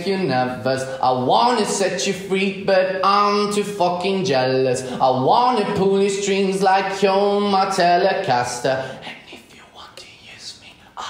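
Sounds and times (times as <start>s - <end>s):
breathy whisper-like voice: 8.8s - 11.0s.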